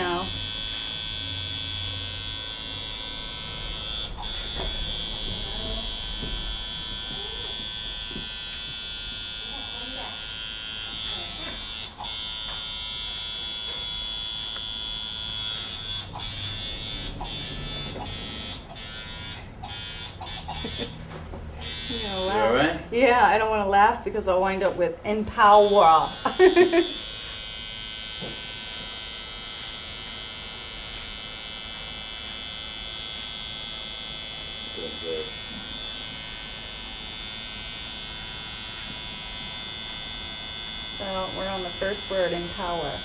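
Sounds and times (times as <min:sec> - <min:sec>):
tattoo machine buzzing: 0:00.0 - 0:23.3, 0:25.4 - 0:43.0.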